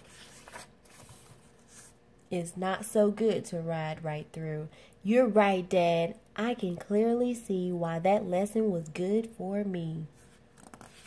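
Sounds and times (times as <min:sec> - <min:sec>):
paper page turning: 0:00.0 - 0:02.0, 0:10.6 - 0:11.0.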